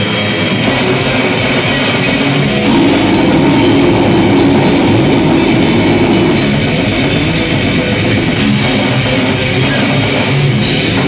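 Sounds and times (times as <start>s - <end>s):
death metal band playing live: 0.0s - 11.0s.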